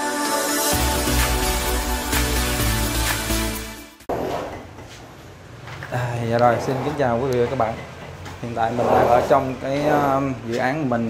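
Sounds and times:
room noise: 4.1s - 10.8s
man speaking: 5.9s - 7.8s, 8.4s - 11.0s.

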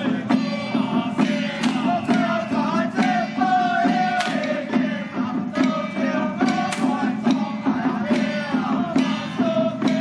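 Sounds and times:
hand drum strokes: 0.0s - 10.0s
men chanting in unison: 0.0s - 10.0s.

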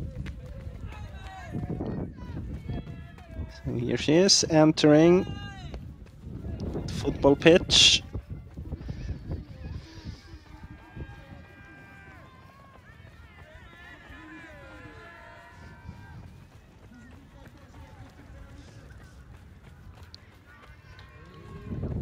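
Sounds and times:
wind on microphone: 0.0s - 12.2s, 15.5s - 16.8s, 20.7s - 22.0s.

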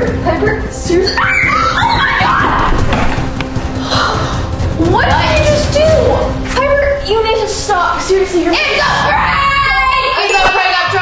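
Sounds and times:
background music: 0.0s - 11.0s
girl screaming: 1.1s - 2.8s.

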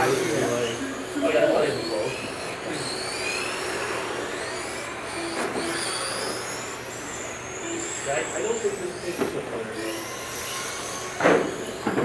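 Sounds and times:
high-pitched electric motor whines: 0.0s - 12.0s.

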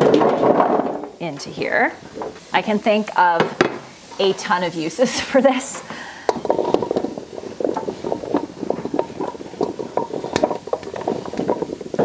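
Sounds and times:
pumpkin chunks clattering into pan: 0.0s - 1.2s, 6.2s - 12.0s.

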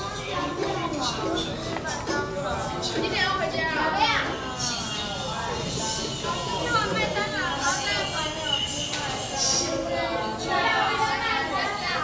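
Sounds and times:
children chattering: 0.0s - 12.0s.

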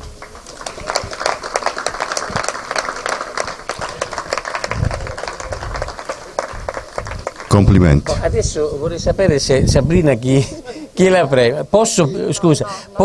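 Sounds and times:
audience applause: 0.0s - 8.3s.

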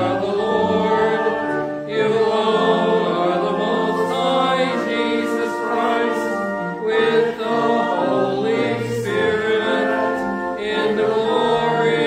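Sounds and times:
choir singing chant-like notes: 0.0s - 12.0s.

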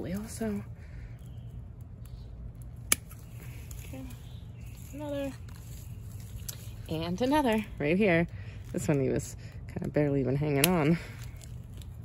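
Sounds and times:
pruning shears snipping: 1.8s - 7.8s, 9.8s - 12.0s.

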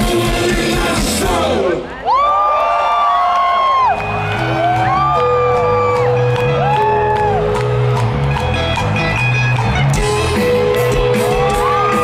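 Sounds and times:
live rock band playing: 0.0s - 1.7s, 4.0s - 12.0s
crowd whooping and cheering: 1.7s - 9.0s, 9.7s - 12.0s.

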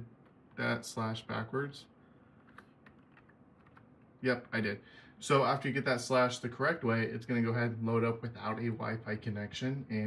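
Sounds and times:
keyboard key presses: 2.4s - 3.9s.

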